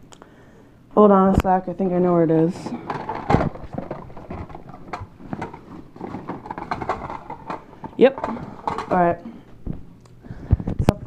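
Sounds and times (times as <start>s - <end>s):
plastic toys clattering in bag: 2.7s - 9.1s.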